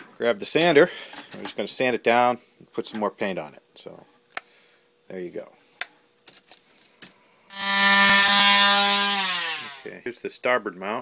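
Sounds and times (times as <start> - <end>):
electric sander sanding metal: 7.5 - 9.9.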